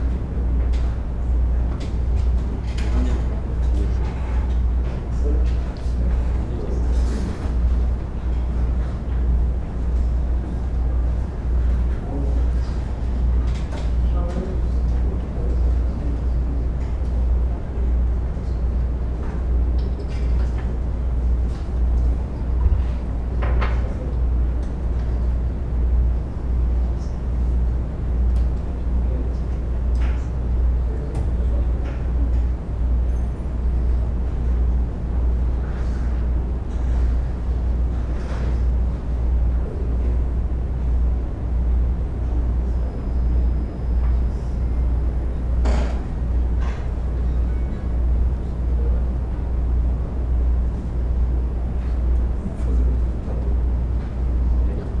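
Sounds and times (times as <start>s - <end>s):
low room rumble: 0.0s - 55.0s.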